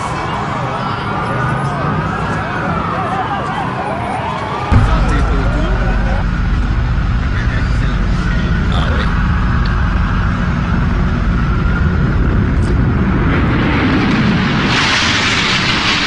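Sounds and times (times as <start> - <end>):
high wailing tone: 4.7 - 13.2
heavy low rumble: 4.7 - 16.0.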